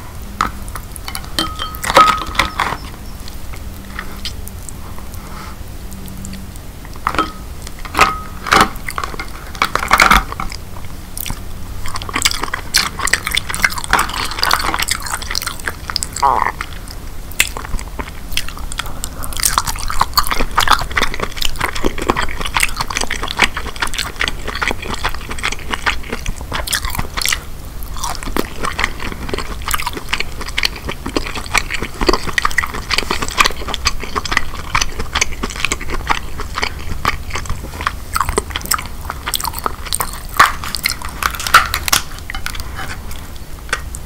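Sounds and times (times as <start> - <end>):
close chewing with mouth clicks: 0.6 - 44.0.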